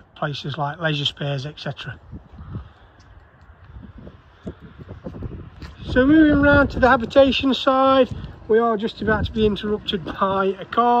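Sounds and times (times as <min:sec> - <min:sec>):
footsteps on tarmac: 0:00.4 - 0:11.0.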